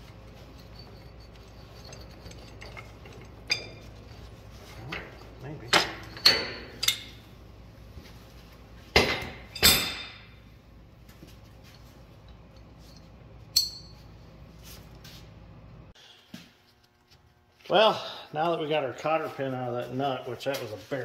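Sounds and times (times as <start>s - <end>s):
steel tools striking metal: 4.8s - 7.2s, 13.5s - 14.0s.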